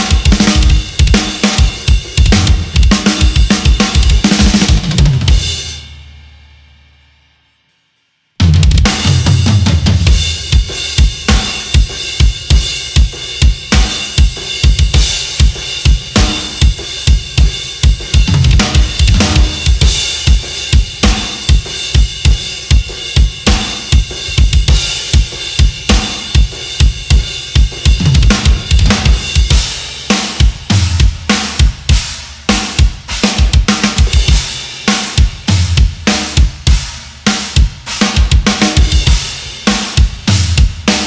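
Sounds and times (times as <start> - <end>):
bass drum strokes: 0.0 - 6.0, 8.4 - 29.8
crash and hi-hat cymbals: 0.0 - 41.0.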